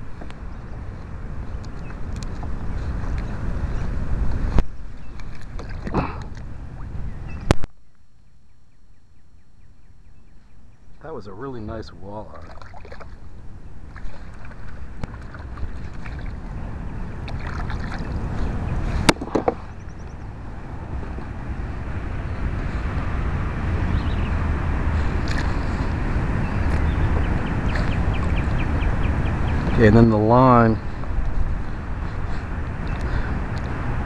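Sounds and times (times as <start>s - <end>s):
water moving around kayak: 0.0s - 7.6s, 11.5s - 34.0s
wind rumbling on microphone: 0.0s - 34.0s.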